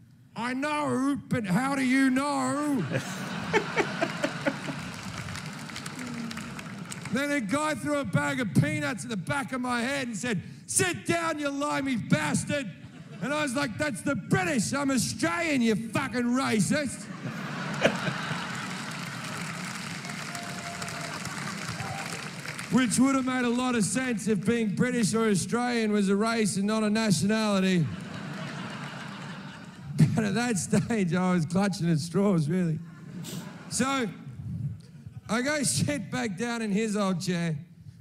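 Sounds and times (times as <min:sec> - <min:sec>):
man laughing: 0:02.7 - 0:05.0, 0:17.3 - 0:18.7
audience laughing: 0:02.7 - 0:07.1, 0:12.8 - 0:13.3, 0:17.0 - 0:22.5, 0:27.8 - 0:30.2, 0:32.8 - 0:33.8
audience applauding: 0:03.4 - 0:07.3, 0:17.3 - 0:23.6, 0:28.0 - 0:29.8
hand clapping: 0:04.0 - 0:07.2, 0:17.7 - 0:23.4.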